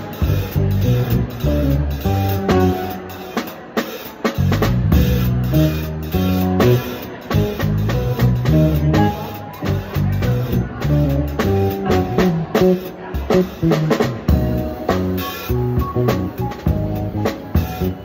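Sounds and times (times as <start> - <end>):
drum kit stick strokes: 0.0 - 18.0
live funk band playing: 0.0 - 18.0.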